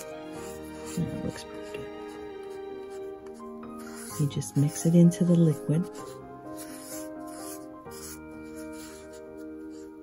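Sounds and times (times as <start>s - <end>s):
soft background music chords: 0.0s - 10.0s.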